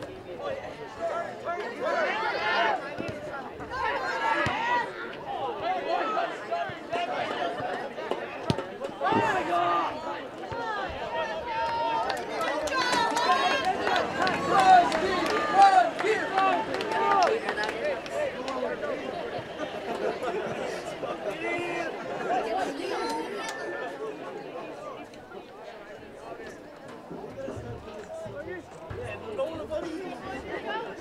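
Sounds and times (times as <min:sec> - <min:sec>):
people shouting and calling out: 0:00.0 - 0:31.0.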